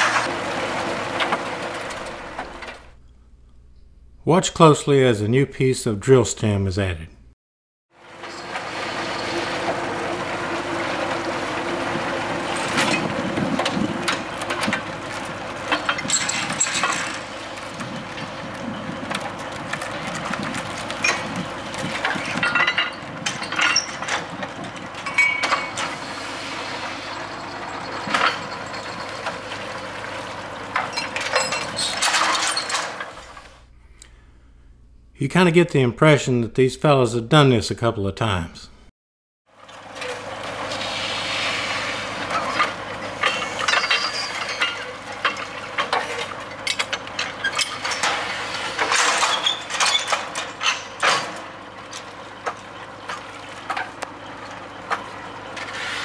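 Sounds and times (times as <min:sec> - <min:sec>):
drilling rig running: 0:00.0 - 0:03.0, 0:08.0 - 0:34.0, 0:39.5 - 0:56.0.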